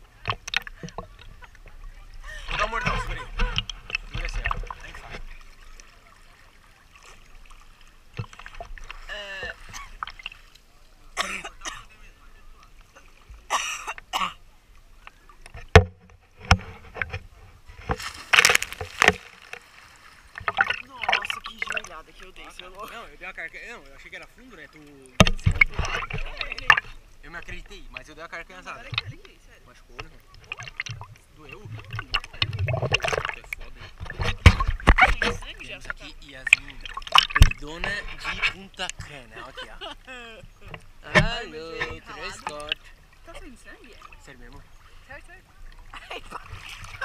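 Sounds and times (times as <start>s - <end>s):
water splashing and sloshing: 0.0s - 47.0s.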